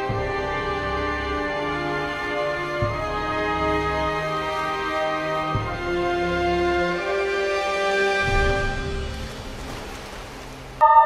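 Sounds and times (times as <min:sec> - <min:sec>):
soundtrack music: 0:00.0 - 0:09.9
water splashing and spraying: 0:07.0 - 0:11.0.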